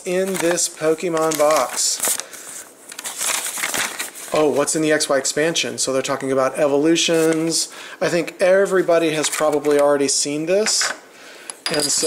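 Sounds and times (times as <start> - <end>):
paper rustling and crinkling: 0.2 - 4.7.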